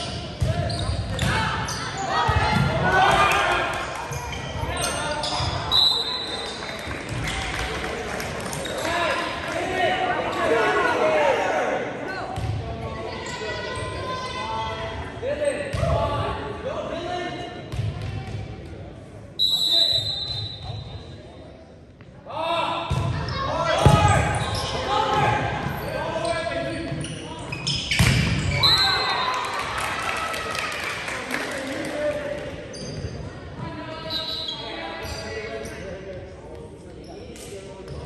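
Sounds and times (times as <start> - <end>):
people shouting and cheering: 1.3 - 4.0
referee's whistle: 4.8 - 6.6, 19.4 - 20.8, 27.6 - 29.3, 34.0 - 34.7.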